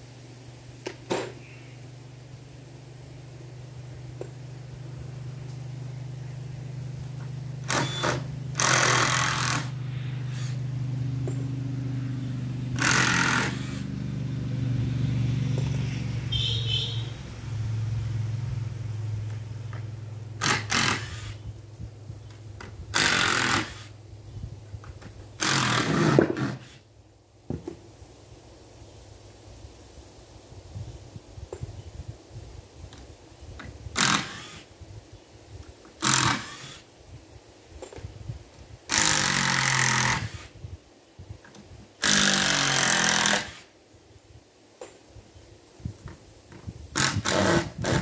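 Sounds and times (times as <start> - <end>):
small motor humming: 4.2 - 21.6, 22.2 - 24.0, 33.9 - 34.7, 36.0 - 36.9, 38.9 - 40.6, 42.0 - 43.7
power tool bursts on wood: 7.2 - 11.4, 12.8 - 14.0, 20.4 - 21.5, 22.6 - 23.9, 25.0 - 26.8, 33.9 - 34.7, 36.0 - 36.9, 38.9 - 40.6, 42.0 - 43.8, 46.9 - 48.0.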